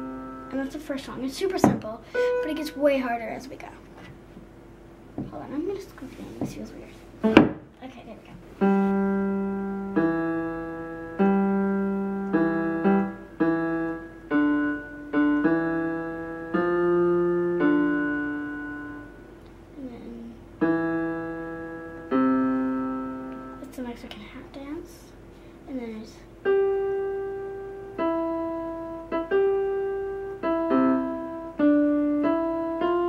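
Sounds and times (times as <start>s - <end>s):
electronic keyboard played slowly: 0.0s - 0.7s, 2.1s - 3.0s, 8.6s - 23.7s, 26.4s - 33.0s.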